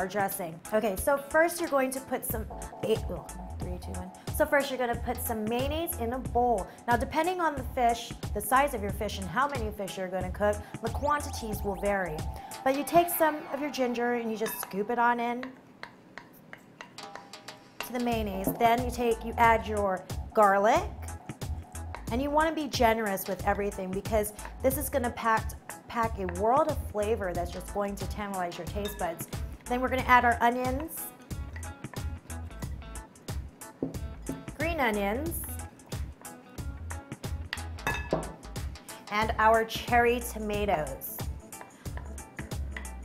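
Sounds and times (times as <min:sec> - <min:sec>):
spoon tapping glass bowl: 0:14.4 - 0:14.8, 0:18.4 - 0:19.0, 0:37.6 - 0:38.4
wooden spoon knocking on glass bowl: 0:33.8 - 0:34.6, 0:37.8 - 0:38.4.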